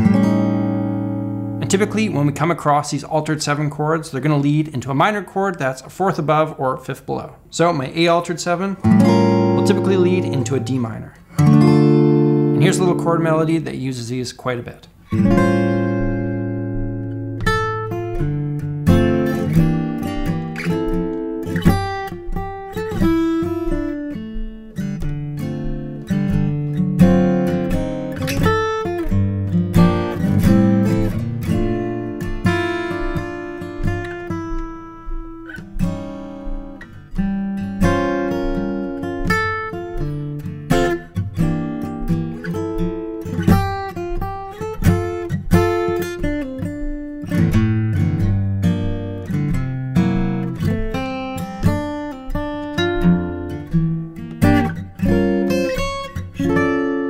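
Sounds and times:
acoustic guitar chord melody: 0.0s - 3.7s, 8.1s - 13.8s, 14.9s - 57.0s.

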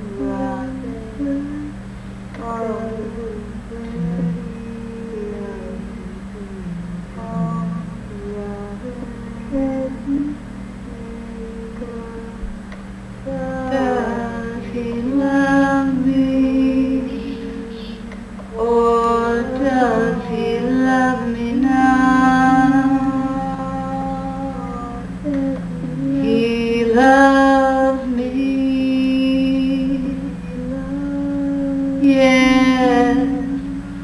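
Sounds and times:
low musical backing: 0.0s - 34.0s
steady drone: 0.0s - 34.0s
woman humming: 0.0s - 34.0s.

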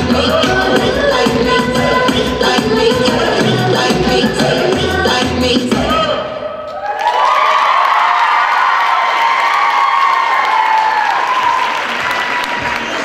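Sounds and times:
audience applauding and cheering: 6.7s - 13.0s.

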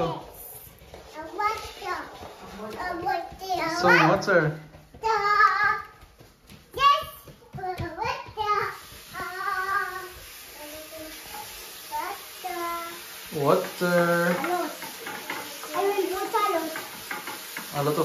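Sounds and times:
small child singing: 1.2s - 2.2s, 2.8s - 4.1s, 5.0s - 13.1s, 14.4s - 16.8s
tap running into basin: 13.2s - 18.0s.

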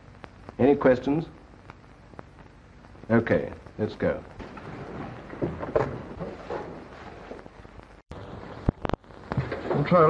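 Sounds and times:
film soundtrack hiss: 0.0s - 10.0s
furniture scraping: 4.4s - 7.6s
papers rustling: 4.4s - 7.7s.

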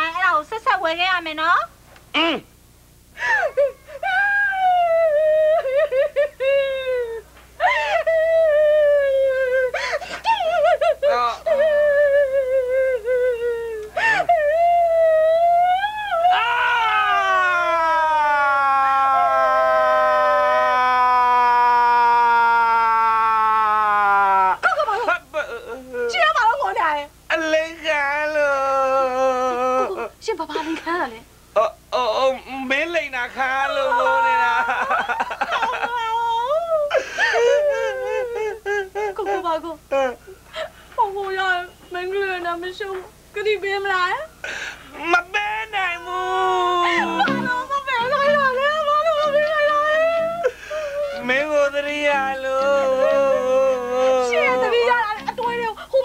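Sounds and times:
man wailing: 3.5s - 26.2s, 27.9s - 30.2s, 33.4s - 40.2s, 45.0s - 55.9s
sobbing breath: 36.9s - 38.9s, 50.2s - 51.2s.

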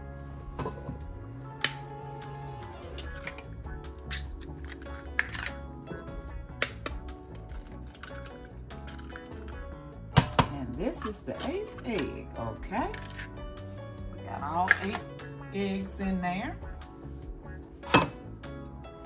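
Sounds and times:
background music: 0.0s - 19.0s
eggs cracking against metal bowl: 2.9s - 5.7s, 6.5s - 13.4s.

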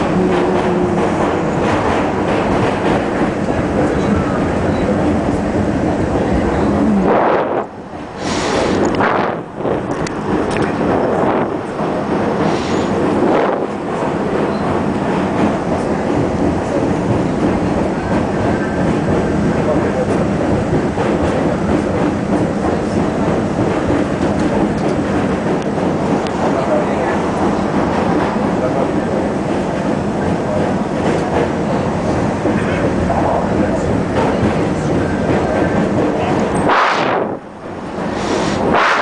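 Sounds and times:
subway train wheels on rail: 0.0s - 39.0s.

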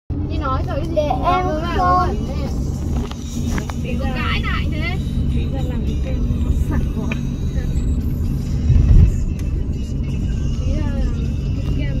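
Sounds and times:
car engine and road rumble: 0.1s - 12.0s
low thump of car jolting: 8.7s - 9.2s.

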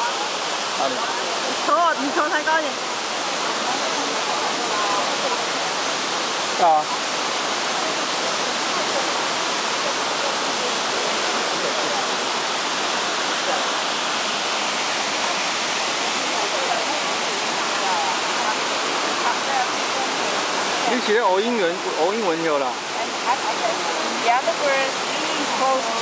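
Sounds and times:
waterfall rushing over boulders: 0.0s - 26.0s.

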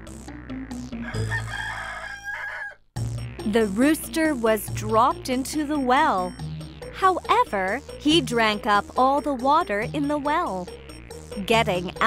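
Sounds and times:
rooster crowing: 1.0s - 2.9s.

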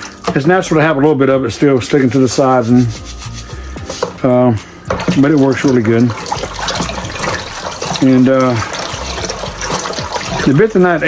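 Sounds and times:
water sloshing in plastic bucket: 4.8s - 11.0s.

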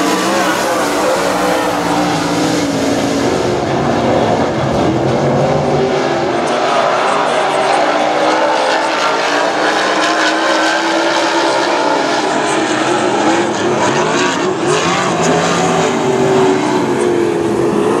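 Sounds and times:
race car engines roaring: 0.0s - 18.0s.

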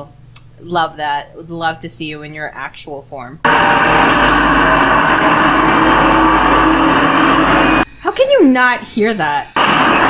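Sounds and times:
loud rushing drone: 3.4s - 8.2s, 9.6s - 10.0s.

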